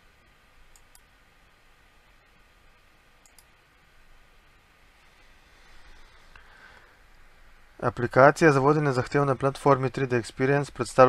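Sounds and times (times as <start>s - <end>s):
faint high clicks: 3.2s - 3.6s.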